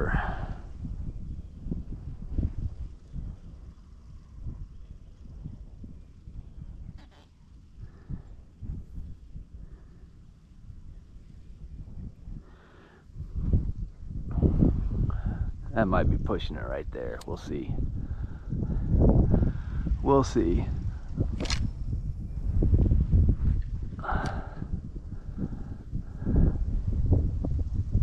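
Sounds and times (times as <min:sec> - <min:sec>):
wind rumbling on microphone: 0:00.0 - 0:28.0.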